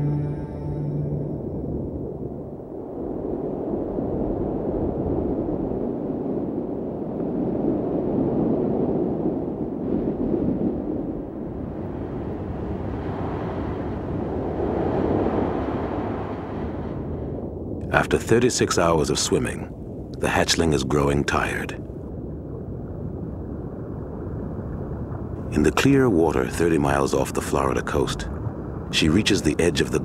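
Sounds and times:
underwater rushing water rumble: 0:01.0 - 0:30.0.

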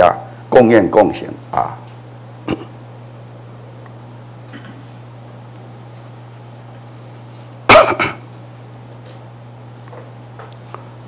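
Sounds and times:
steady low hum: 0:00.0 - 0:11.0
man coughing: 0:02.4 - 0:02.8, 0:07.7 - 0:08.3.

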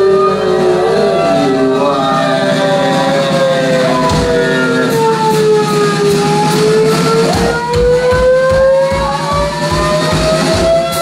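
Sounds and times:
live band playing loudly: 0:00.0 - 0:11.0
low regular beat: 0:00.0 - 0:11.0.

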